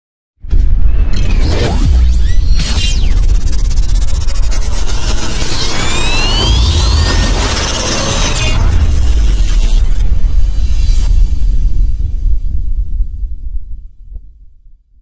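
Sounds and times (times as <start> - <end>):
whooshing sound effects: 0.5 - 12.6
rising sweeps: 1.0 - 11.8
loud electronic music: 1.1 - 11.0.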